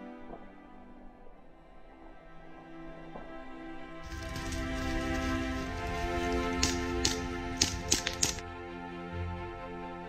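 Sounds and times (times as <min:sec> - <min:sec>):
background music: 0:00.0 - 0:10.0
airsoft gun shots: 0:04.1 - 0:08.4.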